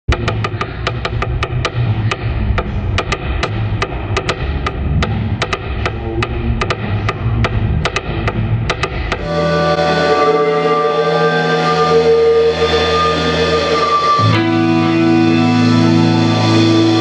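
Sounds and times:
drumstick tapping on wood: 0.1s - 9.3s
low bass line: 0.1s - 17.0s.

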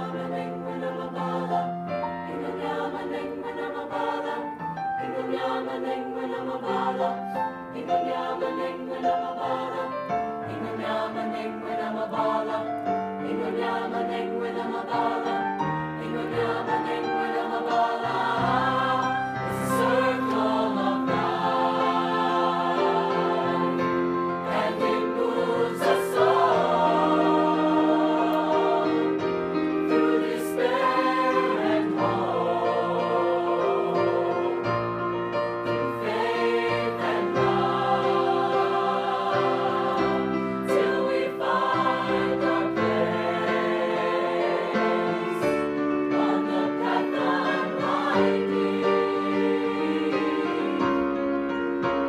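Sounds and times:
mixed choir singing in parts: 0.0s - 51.6s.

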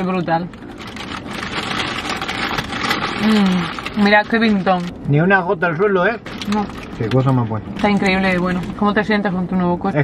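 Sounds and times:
paper wrapper crinkling: 0.5s - 4.9s, 6.2s - 8.8s.

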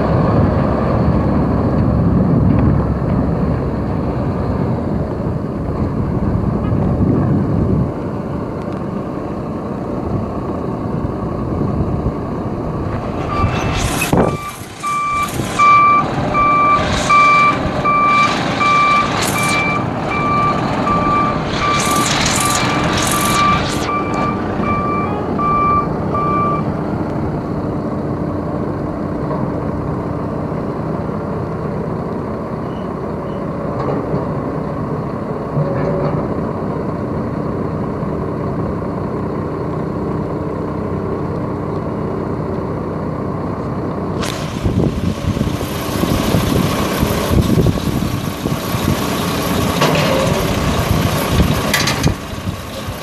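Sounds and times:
diesel truck engine running: 0.0s - 53.0s
backup alarm beeping: 14.2s - 26.7s.

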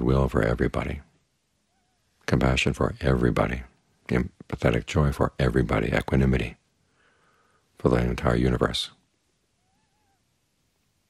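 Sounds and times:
faint call-like tone: 9.6s - 10.3s.

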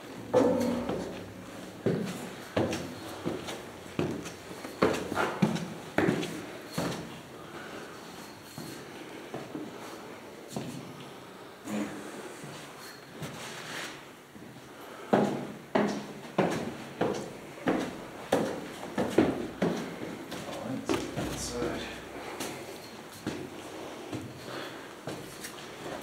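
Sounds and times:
footsteps on concrete stairs: 0.0s - 7.2s, 15.1s - 26.0s.

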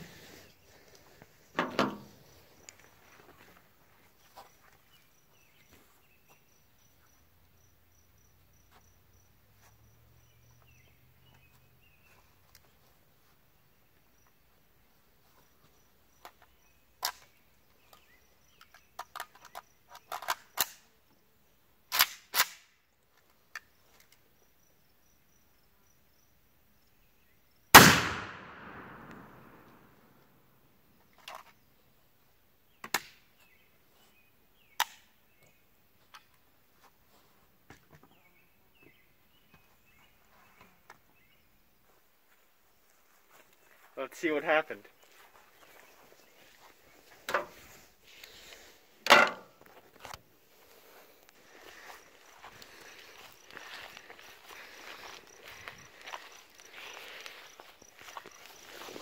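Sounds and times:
metallic clicks of rifle handling: 18.6s - 20.8s, 21.9s - 22.7s
rifle shot with echo: 27.8s - 29.8s.

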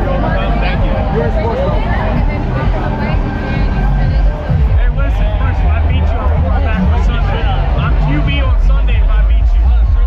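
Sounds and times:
loud music with heavy bass: 0.0s - 10.0s
people talking: 0.0s - 10.0s.

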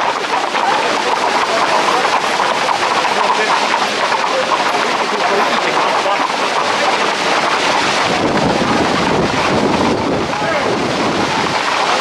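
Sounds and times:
hooves clattering on pavement: 0.0s - 12.0s
voices: 0.0s - 12.0s.

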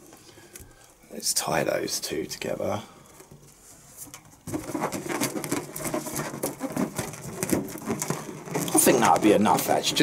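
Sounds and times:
balloons rubbing and clicking: 3.8s - 10.0s.

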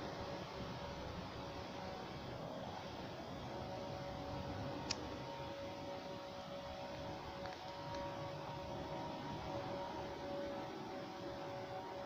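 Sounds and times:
faint steady hums: 0.0s - 12.0s.

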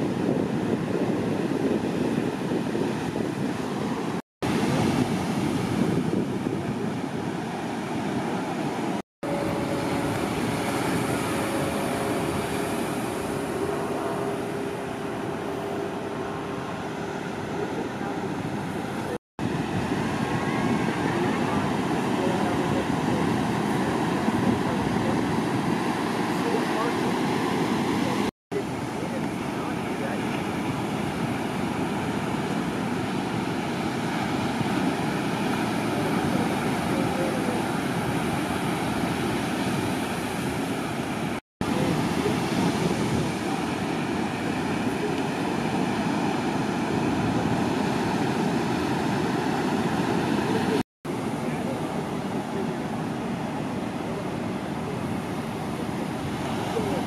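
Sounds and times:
ocean surf breaking: 0.0s - 57.0s.

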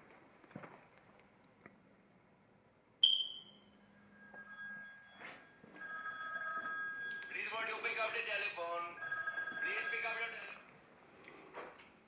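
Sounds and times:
sharp click with high ring: 3.0s - 3.6s
person speaking: 7.3s - 10.7s.

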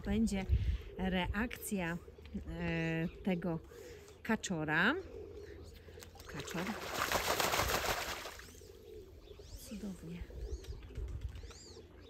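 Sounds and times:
low cooing calls: 0.0s - 12.0s
duck splashing in water: 6.2s - 8.5s.

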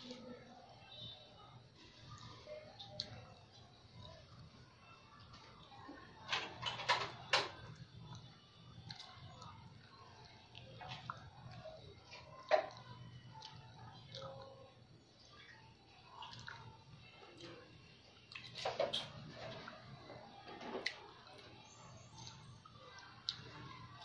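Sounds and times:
wet chewing and lip smacks: 2.0s - 4.5s, 7.6s - 19.9s, 20.8s - 24.0s.

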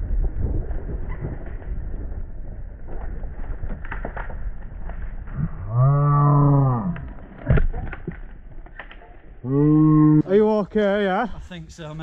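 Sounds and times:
mountain bike rolling over forest floor: 0.0s - 5.9s
bike rattles and knocks: 0.3s - 5.4s.

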